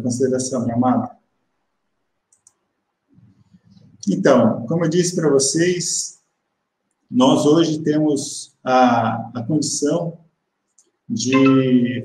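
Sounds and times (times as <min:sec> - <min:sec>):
faint quick clicks: 0:02.3 - 0:02.6.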